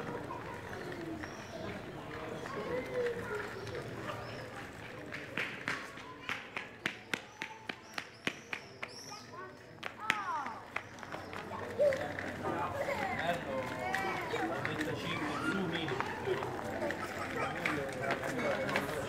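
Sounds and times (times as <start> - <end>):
footsteps on pavement: 0.0 - 19.0
people's voices: 0.0 - 19.0.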